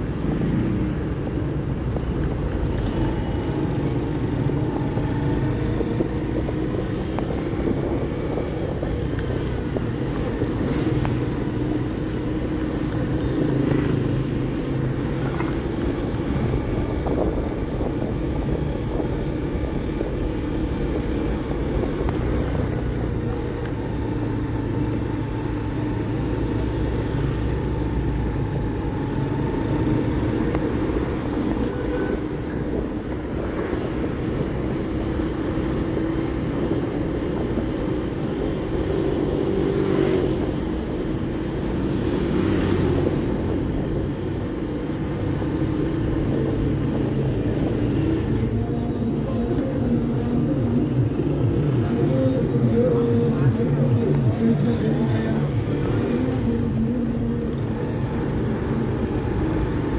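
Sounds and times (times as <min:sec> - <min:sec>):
surrounding traffic noise: 0:00.0 - 0:59.9.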